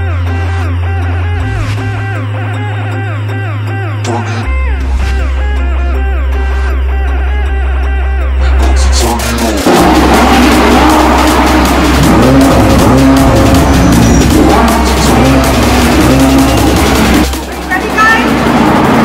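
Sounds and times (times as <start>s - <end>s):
music track: 0.0s - 19.0s
sports car engines revving: 8.4s - 19.0s.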